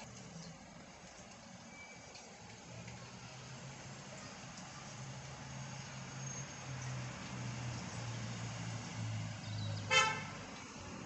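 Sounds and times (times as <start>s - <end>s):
vehicle horn toot: 9.9s - 10.4s.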